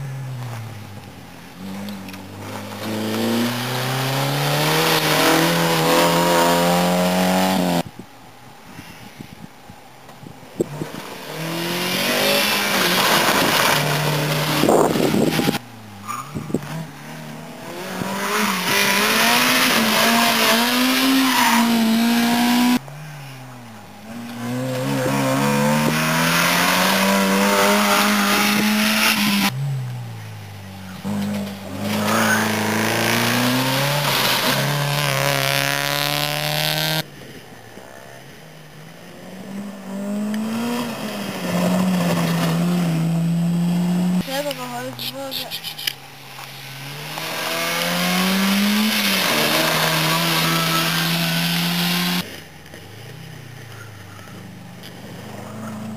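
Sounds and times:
rally car engines revving past: 0.0 - 7.8, 10.6 - 44.9, 45.8 - 55.9.

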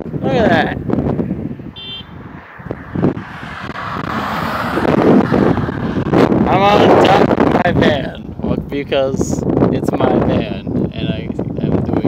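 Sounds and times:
wind rumbling on microphone: 0.0 - 12.0
car passing by: 2.2 - 6.5.

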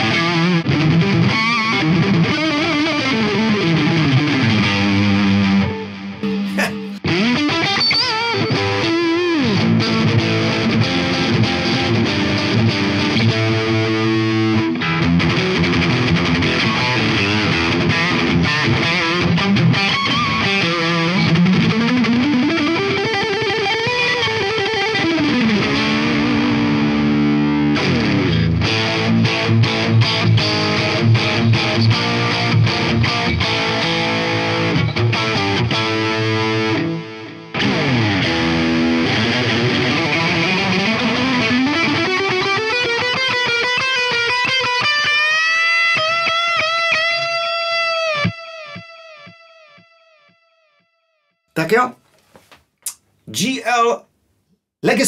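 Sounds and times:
distorted electric guitar: 0.0 - 50.3.

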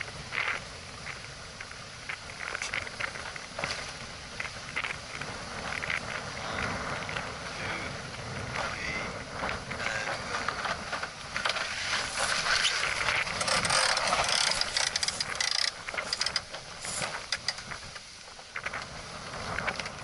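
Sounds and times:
water noise: 0.0 - 20.0
wind: 0.0 - 20.0
rope and fittings clicking: 10.4 - 18.9.

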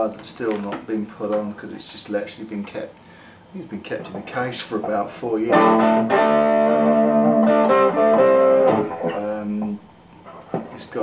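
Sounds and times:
electric guitar notes and chords: 5.5 - 9.8.

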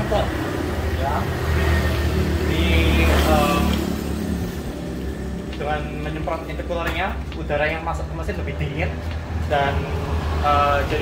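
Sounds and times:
vehicle engine rumbling: 0.0 - 11.0
man talking: 2.4 - 3.9, 5.6 - 11.0.

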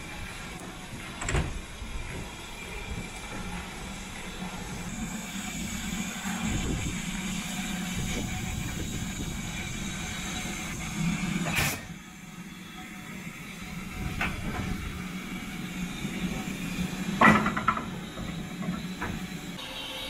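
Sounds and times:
low locomotive rumble: 0.0 - 19.9
steam hissing: 0.0 - 20.0.

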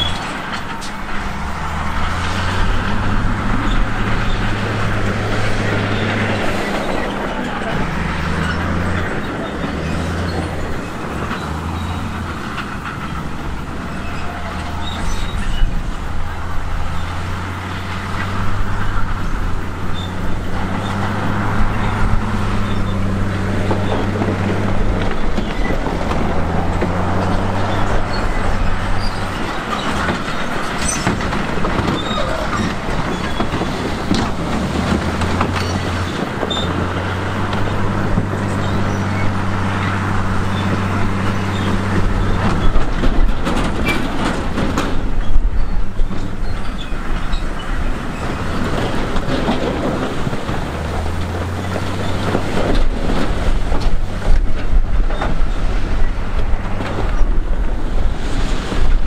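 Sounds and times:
bulldozer diesel drone: 0.0 - 59.0
steel tracks rattling and clanking: 0.0 - 59.0.

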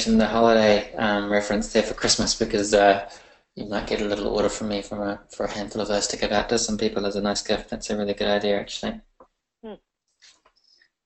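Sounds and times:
person murmuring hmm: 0.0 - 5.9.

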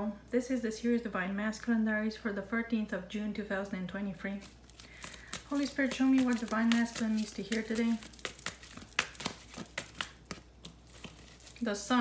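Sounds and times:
cards being shuffled: 4.4 - 11.7.

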